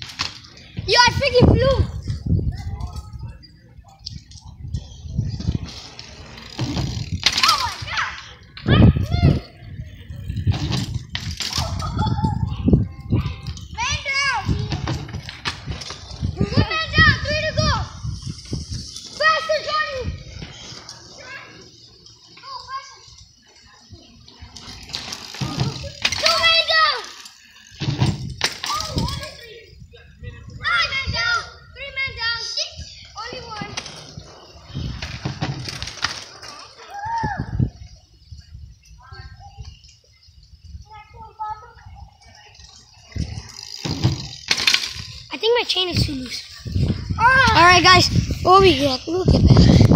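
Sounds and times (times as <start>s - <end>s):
children shouting: 19.0s - 23.2s, 25.4s - 27.4s, 30.6s - 34.0s, 36.3s - 37.8s.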